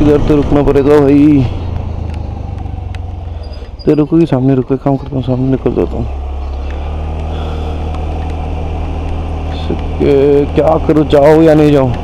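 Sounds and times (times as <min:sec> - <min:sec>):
motorcycle engine running: 0:00.0 - 0:12.0
road and wind noise: 0:00.0 - 0:12.0.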